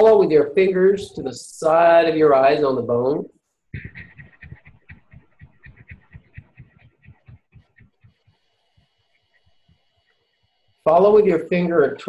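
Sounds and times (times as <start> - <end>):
fingertips tapping on skin: 3.7 - 9.9.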